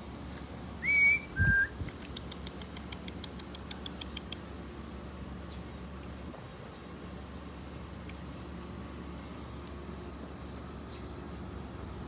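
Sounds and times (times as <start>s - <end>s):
person whistling: 0.8s - 1.8s.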